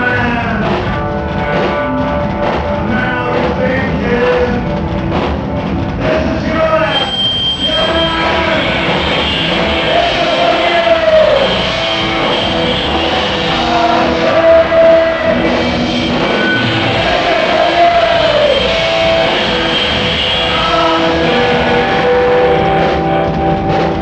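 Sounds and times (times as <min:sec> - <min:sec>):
punk rock band playing live: 0:00.0 - 0:24.0.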